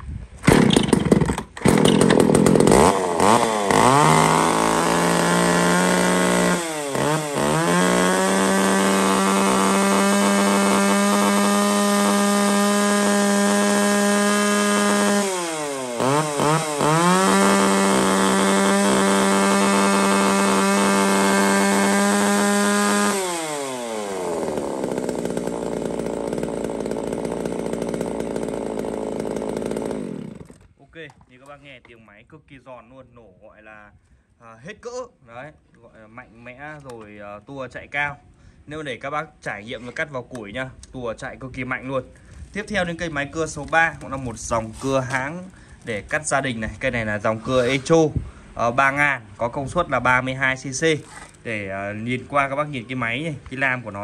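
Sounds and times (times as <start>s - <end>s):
chainsaw revving: 0.4s - 30.7s, 42.6s - 47.9s.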